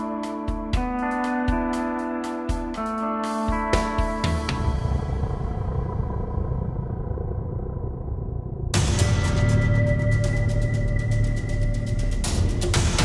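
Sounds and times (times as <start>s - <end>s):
sustained guitar chords: 0.0s - 12.2s
drum hits: 3.5s - 4.7s
low dark drone: 4.5s - 13.0s.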